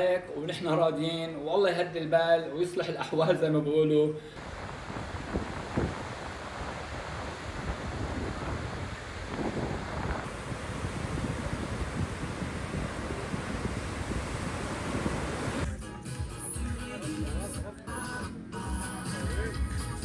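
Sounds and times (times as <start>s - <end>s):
surf washing onto beach: 4.4s - 15.7s
wind buffeting microphone: 4.4s - 15.7s
music: 15.6s - 20.0s.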